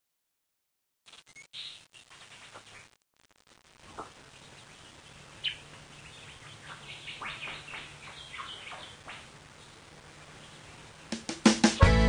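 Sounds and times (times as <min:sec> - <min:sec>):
birds chirping: 0:01.2 - 0:03.0, 0:03.8 - 0:12.0.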